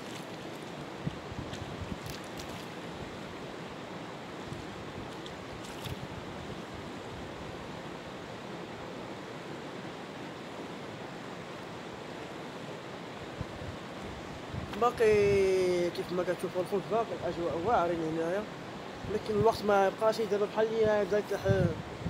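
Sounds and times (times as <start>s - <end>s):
river water rushing: 0.0s - 14.6s, 15.5s - 19.1s
wind buffeting microphone: 0.8s - 3.4s, 13.4s - 15.9s, 20.8s - 22.0s.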